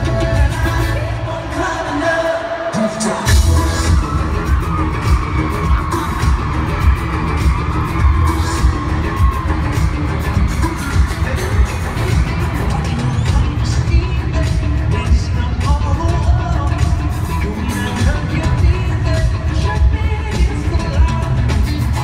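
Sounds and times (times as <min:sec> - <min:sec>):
live pop concert music: 0:00.0 - 0:22.0
man singing: 0:00.0 - 0:22.0.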